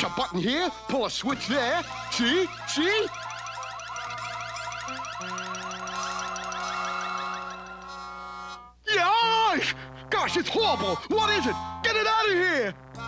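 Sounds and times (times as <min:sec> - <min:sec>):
warbling electronic trill: 0:01.9 - 0:08.2
held musical chord: 0:01.9 - 0:08.5.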